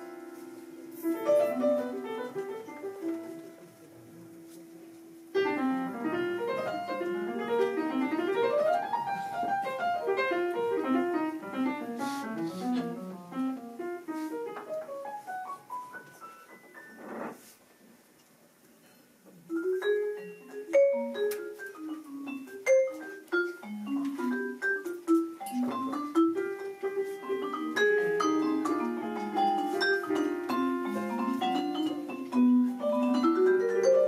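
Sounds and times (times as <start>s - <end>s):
jazz piano: 0.0s - 34.0s.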